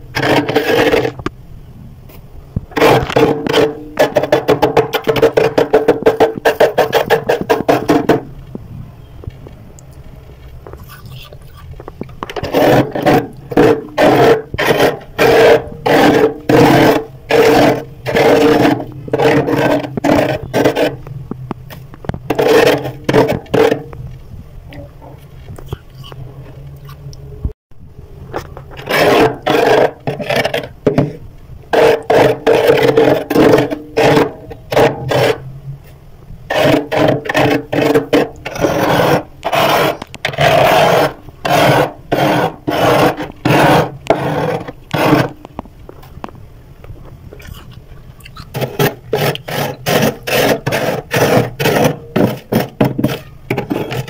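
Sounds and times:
spoon scraping frost: 10.7s - 11.8s, 47.4s - 54.0s.

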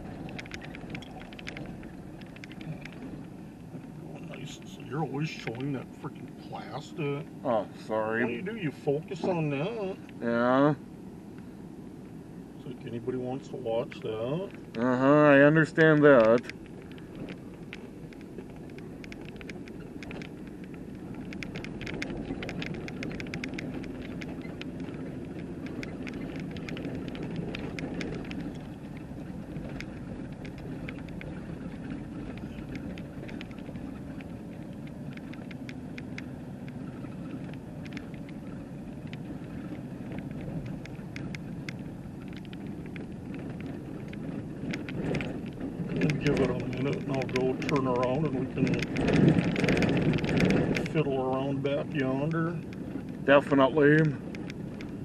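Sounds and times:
small ticks and rattles: 0.0s - 6.4s, 12.8s - 55.0s
vehicle road and engine rumble: 0.0s - 55.0s.

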